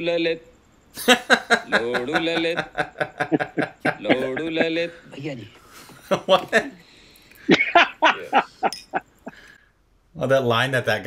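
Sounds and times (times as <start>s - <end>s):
man laughing: 1.0s - 5.1s, 7.4s - 9.4s.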